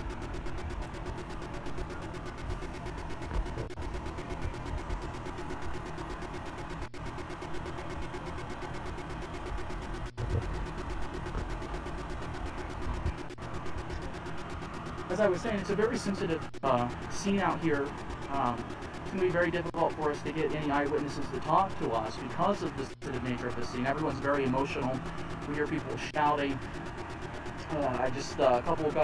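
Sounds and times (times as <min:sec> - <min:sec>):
vehicle engine running: 0:00.0 - 0:29.0.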